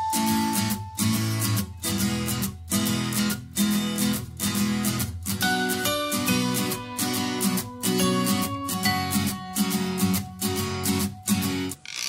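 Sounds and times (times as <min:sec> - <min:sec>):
guitar strumming chords: 0:00.0 - 0:11.8.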